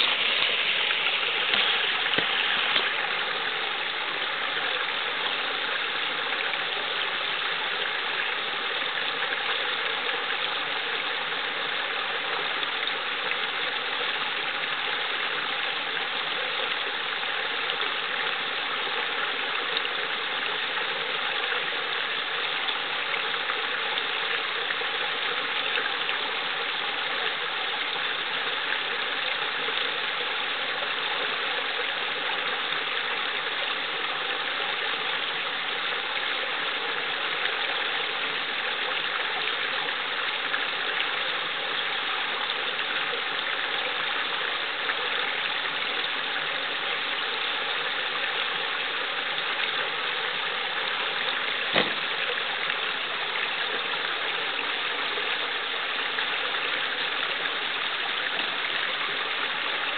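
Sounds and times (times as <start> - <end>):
brook babbling: 0.0 - 59.9.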